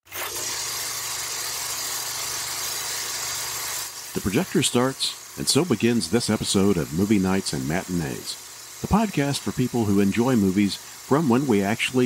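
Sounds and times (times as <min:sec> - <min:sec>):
film projector running: 0:00.1 - 0:12.0.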